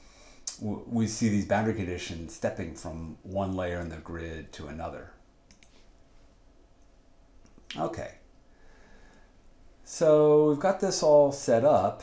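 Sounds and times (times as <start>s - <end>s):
computer mouse clicks: 5.5s - 5.8s.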